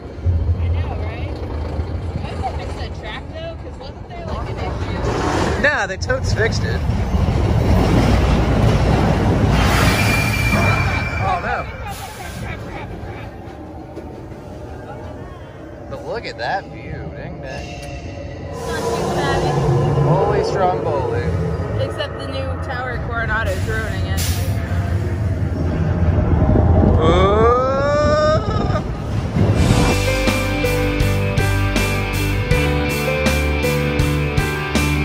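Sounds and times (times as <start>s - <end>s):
roller coaster cars rumbling on track: 0.0s - 35.0s
long rising call: 17.0s - 23.1s.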